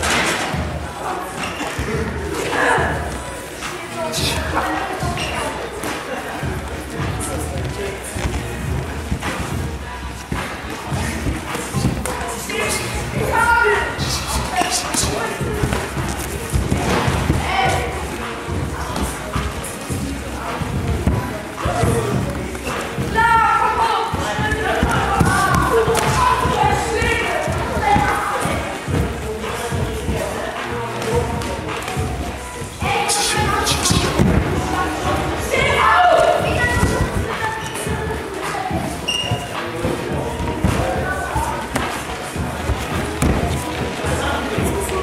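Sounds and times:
background music: 0.0 - 45.0
kickboxing thuds: 14.3 - 17.9, 24.2 - 30.2, 33.4 - 35.2, 36.5 - 37.3, 38.8 - 45.0.

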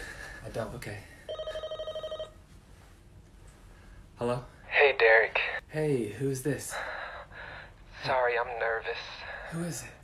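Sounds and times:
mobile phone ringing: 1.3 - 2.4.

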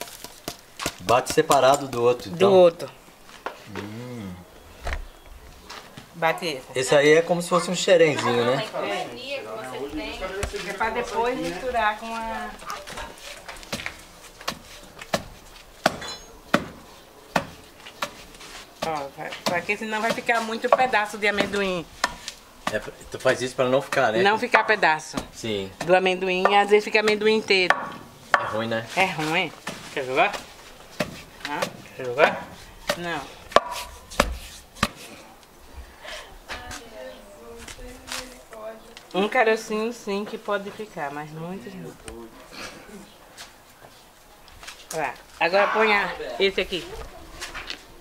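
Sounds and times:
wooden pestle knocking in mortar: 27.7 - 28.6, 32.9 - 35.0.

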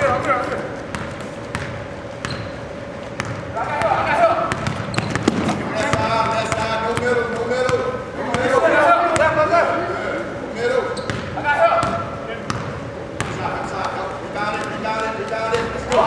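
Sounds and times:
basketball bouncing on court: 0.9 - 9.4, 11.0 - 13.9.

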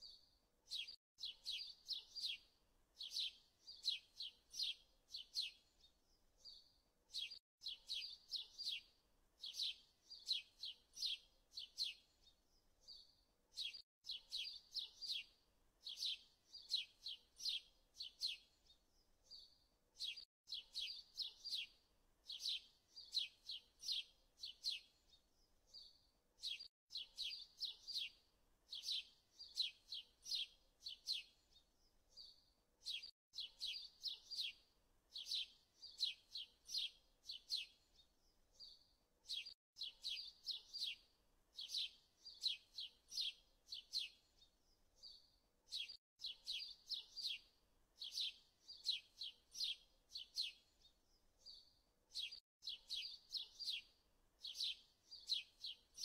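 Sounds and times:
bird chirping: 0.0 - 56.0.

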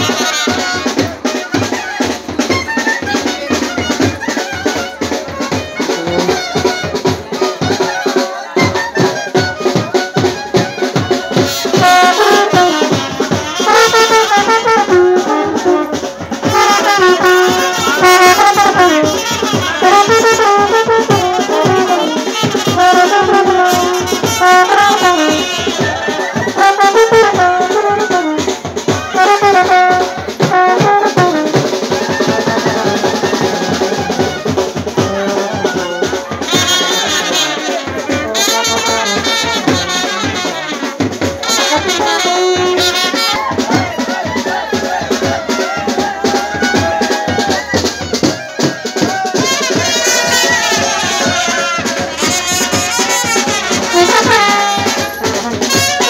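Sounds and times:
drums fast beat: 0.0 - 56.0
trumpets and brass horn melody: 0.0 - 56.0.

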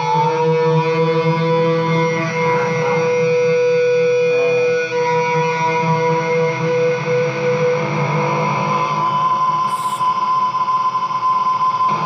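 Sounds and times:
distorted electric guitar high note: 0.0 - 12.0.

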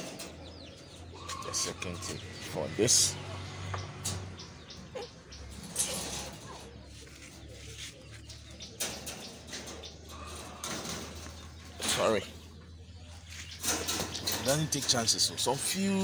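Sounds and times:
wire cage clicks and rattles: 0.0 - 0.9, 3.7 - 6.8, 8.3 - 12.5, 13.5 - 16.0
bird calls: 0.0 - 16.0.

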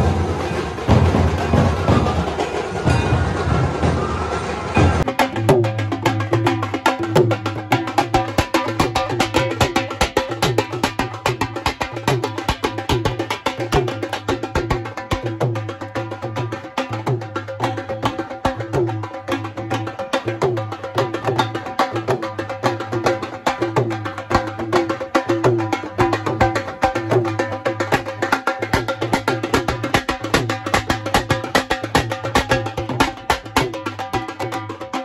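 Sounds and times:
barrel drums beaten with sticks: 0.0 - 35.0
side drum: 0.0 - 35.0.

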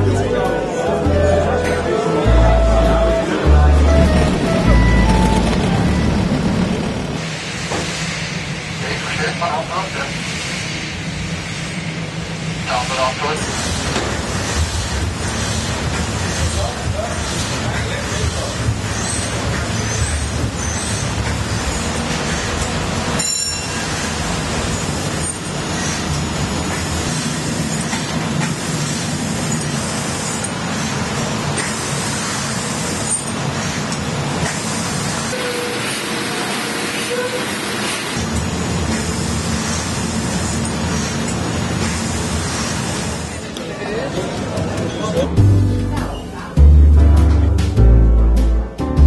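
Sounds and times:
low rumble: 2.3 - 7.2
steam engine and paddle wheels rushing: 2.9 - 45.3.

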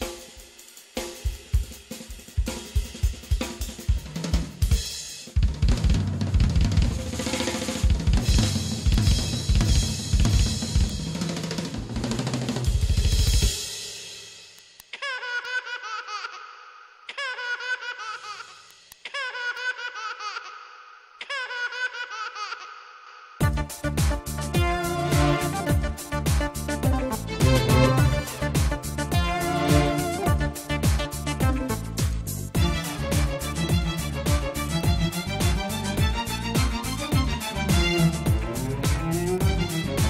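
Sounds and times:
drum kit playing: 0.0 - 14.8, 23.4 - 40.0.

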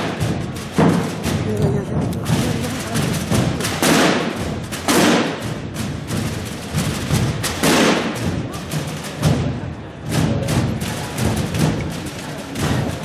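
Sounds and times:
drum corps beating drums: 0.0 - 13.0.

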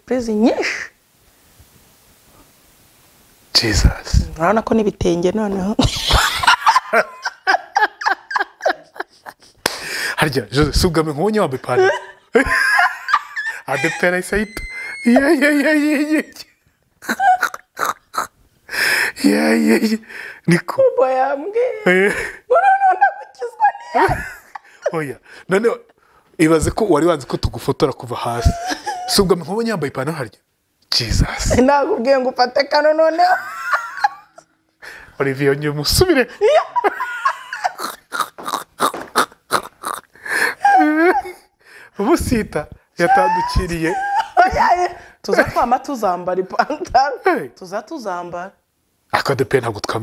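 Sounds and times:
woman laughing: 5.8 - 9.7, 11.7 - 16.4, 17.0 - 18.3, 21.6 - 25.0, 28.4 - 29.1, 33.1 - 34.5, 36.4 - 41.5, 43.1 - 45.7.

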